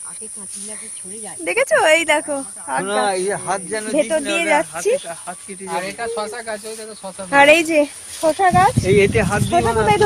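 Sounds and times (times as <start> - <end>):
woman talking: 0.0 - 3.1, 4.0 - 4.8, 7.3 - 8.8, 9.5 - 10.0
high-pitched hiss: 0.0 - 10.0.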